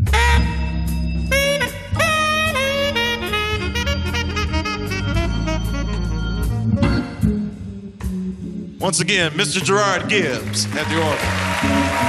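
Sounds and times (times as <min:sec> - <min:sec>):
tenor saxophone: 0:00.0 - 0:07.3
organ bass: 0:00.0 - 0:12.0.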